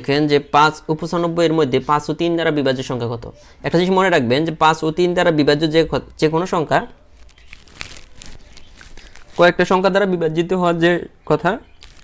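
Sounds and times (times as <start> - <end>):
person speaking: 0.0 - 12.0
paper rustling and crinkling: 7.0 - 9.7, 11.7 - 12.0.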